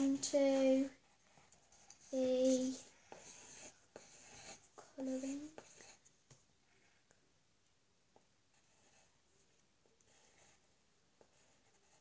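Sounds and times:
pencil scratching on paper: 0.0 - 6.1, 8.5 - 9.2, 10.0 - 12.0.

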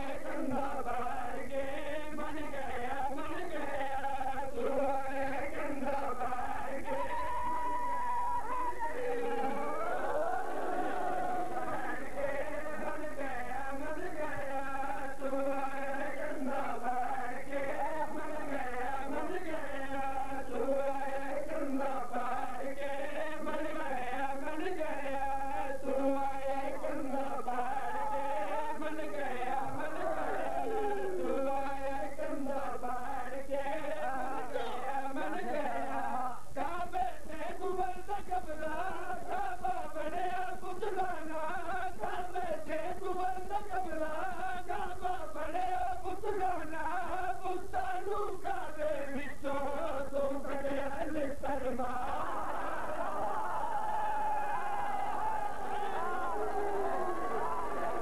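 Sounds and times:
man chanting religious recitation: 0.0 - 7.3, 10.8 - 52.9.

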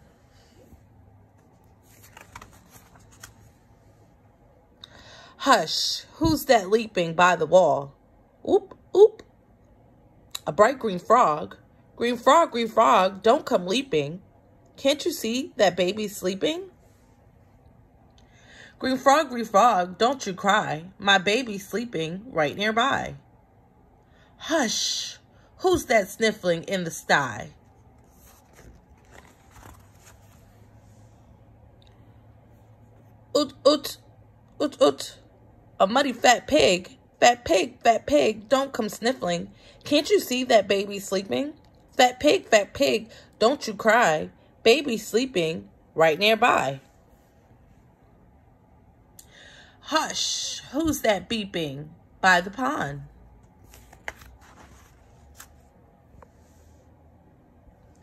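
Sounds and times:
low steady hum: 0.0 - 58.0
book page turning: 1.2 - 3.6, 27.7 - 31.0, 53.4 - 56.8.

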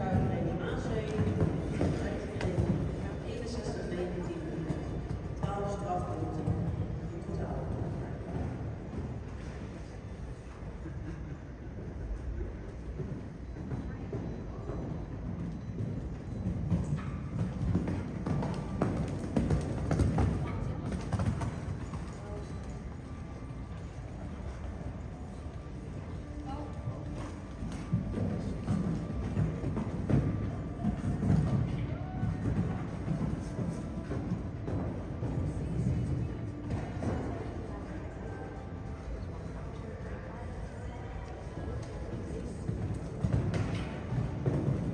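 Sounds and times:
horse hoofbeats on sand: 0.0 - 9.6, 12.8 - 37.8, 41.4 - 44.9
background music: 17.6 - 40.4.

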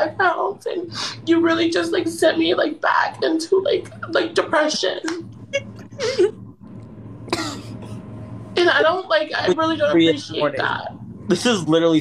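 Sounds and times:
person coughing: 7.3 - 8.0.

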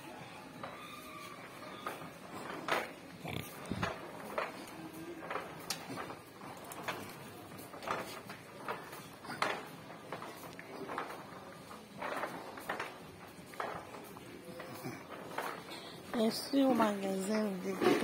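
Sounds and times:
footsteps on tiled floor: 0.0 - 18.0
store background hum: 0.0 - 18.0.

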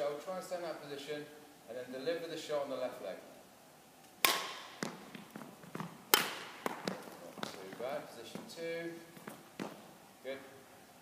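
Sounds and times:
sharp smack echoing in hall: 4.2 - 4.9
shoes tapping on wooden floor: 4.7 - 9.9.

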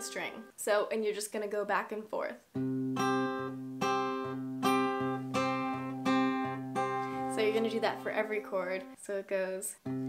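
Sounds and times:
fingerpicked acoustic guitar: 2.5 - 8.9.

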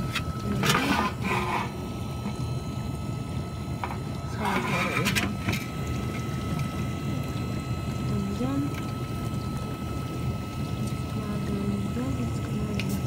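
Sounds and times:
water moving inside dishwasher: 0.0 - 1.8, 3.8 - 6.8
dishwasher motor humming: 0.0 - 13.0
thin steady whine: 0.0 - 13.0.

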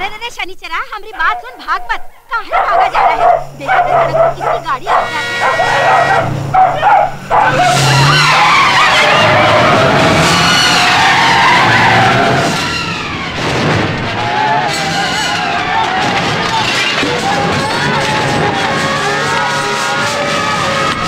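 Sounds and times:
dog barking: 1.2 - 8.2
people shouting: 1.2 - 13.4, 14.0 - 21.0
bus skidding screech: 2.6 - 21.0.

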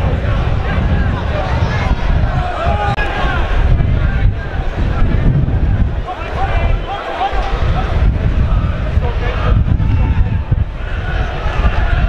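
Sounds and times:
crowd murmur: 0.0 - 12.0
wind rumble on microphone: 0.0 - 12.0
people shouting: 0.1 - 4.8, 6.0 - 12.0.

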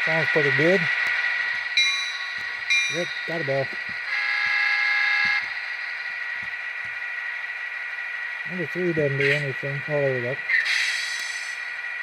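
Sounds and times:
model locomotive bell ringing: 1.8 - 4.2.

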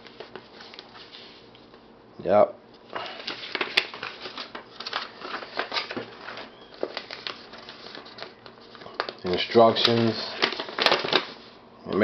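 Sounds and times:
paper and plastic bag rustling: 0.0 - 1.5, 2.9 - 11.6.

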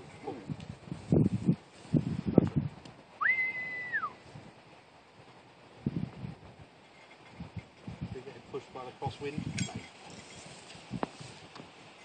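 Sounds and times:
recall whistle: 3.2 - 4.2.

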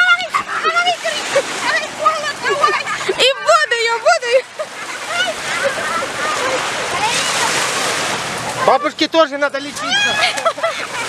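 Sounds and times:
small waves splashing: 0.0 - 11.0.

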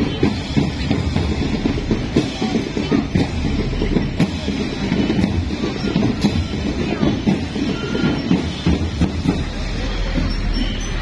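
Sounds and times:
marching band drums: 0.0 - 11.0.

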